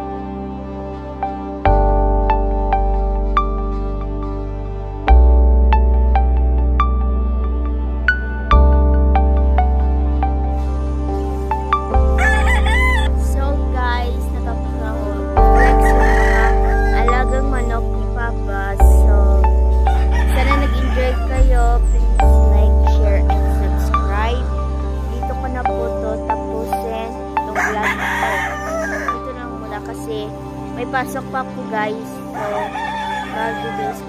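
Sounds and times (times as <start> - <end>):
background music low tones: 0.0 - 34.0
rooster crowing: 12.2 - 13.1, 15.6 - 17.0, 19.9 - 21.3, 27.6 - 29.1, 32.4 - 34.0.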